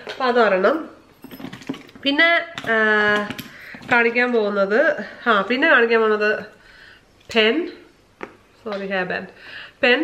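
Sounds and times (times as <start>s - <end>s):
woman speaking: 0.0s - 1.0s, 2.0s - 6.6s, 7.3s - 7.9s, 8.6s - 10.0s.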